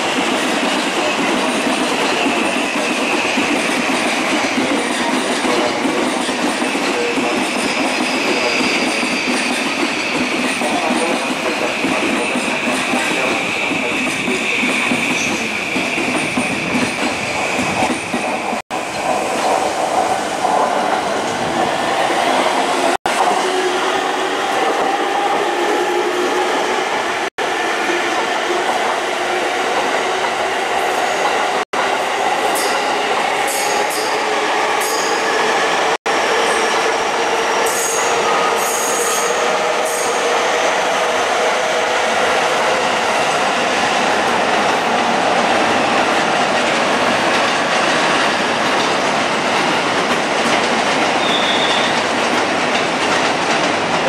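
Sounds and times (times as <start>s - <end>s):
train wheels rumbling on rails: 0.0s - 54.0s
high-pitched wheel squeals: 51.2s - 52.0s.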